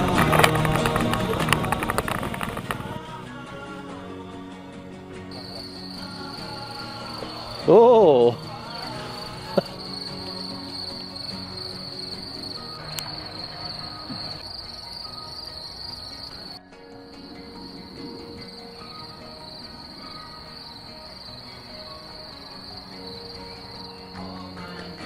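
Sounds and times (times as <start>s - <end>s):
crickets chirring: 0.0s - 3.3s, 5.3s - 25.0s
quiet background music: 0.0s - 25.0s.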